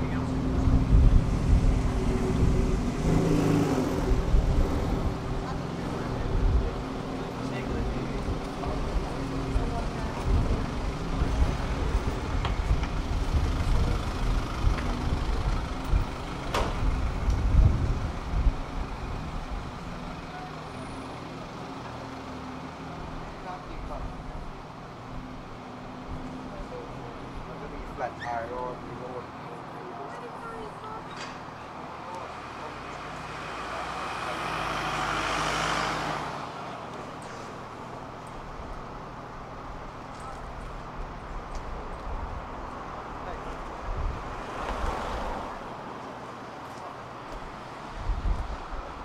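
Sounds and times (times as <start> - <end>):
passers-by talking: 0.0 - 49.0
traffic: 0.0 - 49.0
vehicle engine rumbling: 0.0 - 49.0.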